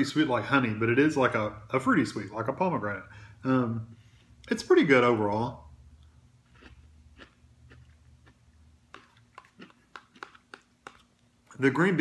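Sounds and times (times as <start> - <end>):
person chewing food: 5.9 - 11.5
wet mouth clicks: 6.6 - 11.2.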